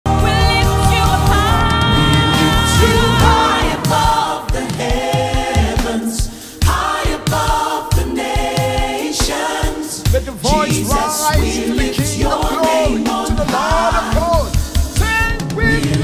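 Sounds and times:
bass and drum beat: 0.1s - 16.0s
gospel choir singing: 0.1s - 16.0s.

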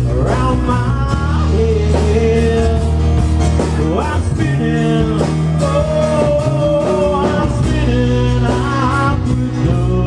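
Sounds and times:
bass guitar: 0.0s - 10.0s
drums: 0.0s - 10.0s
strummed acoustic guitars: 0.0s - 10.0s.

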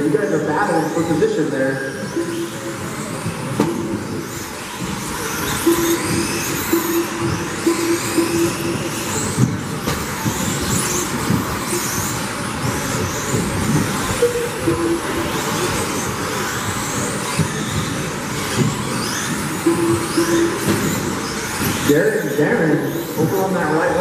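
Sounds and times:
electric motors whining: 0.0s - 24.0s.

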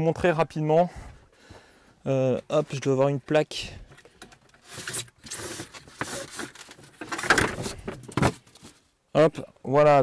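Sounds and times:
plastic trays rustling and clattering: 3.9s - 8.8s.

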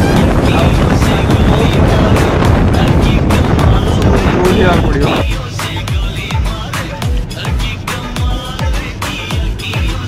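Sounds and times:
wind buffeting microphone: 0.0s - 5.3s
background music: 0.0s - 10.0s.

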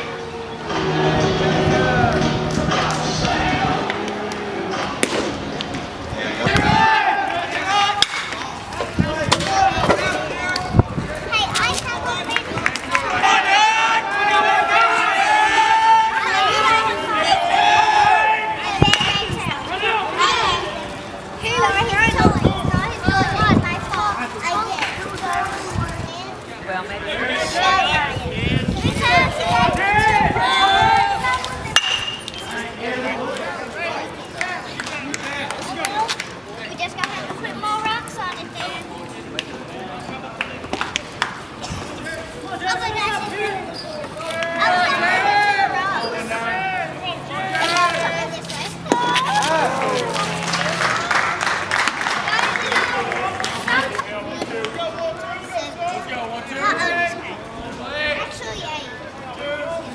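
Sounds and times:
voices shouting: 0.0s - 25.7s, 27.0s - 36.1s, 42.5s - 59.9s
bat striking baseball: 4.9s - 5.4s, 8.0s - 8.4s, 31.7s - 32.4s
people calling out: 42.5s - 51.3s.

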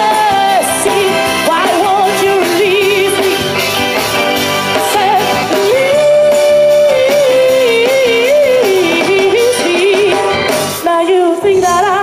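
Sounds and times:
bending lead melody: 0.0s - 12.0s
drums: 0.0s - 12.0s
guitars: 0.0s - 12.0s.

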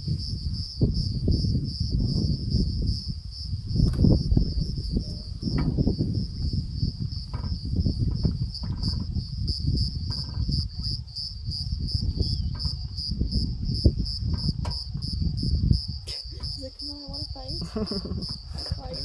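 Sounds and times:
cricket-like insect calling: 0.0s - 19.0s.

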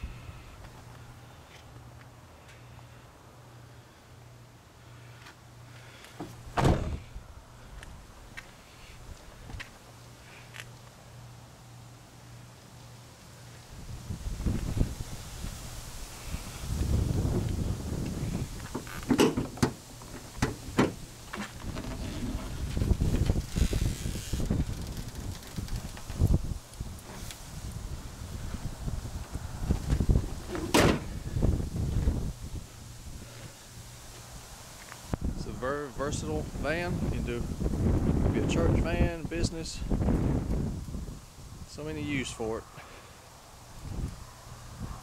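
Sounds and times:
wind gusting on microphone: 6.6s - 8.1s, 13.7s - 42.8s, 43.5s - 45.0s
clunks and knocks: 18.7s - 22.6s, 30.5s - 31.1s.

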